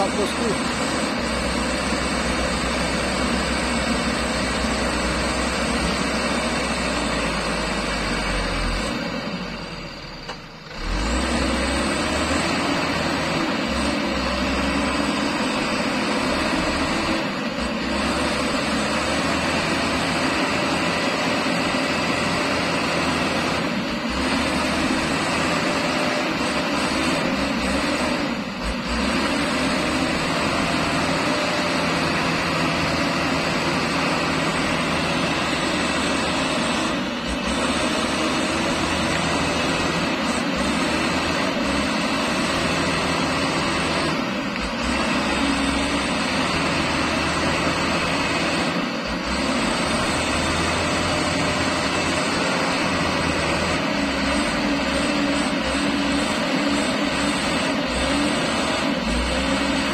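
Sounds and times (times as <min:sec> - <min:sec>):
diesel engine under load: 0:00.0 - 0:59.9.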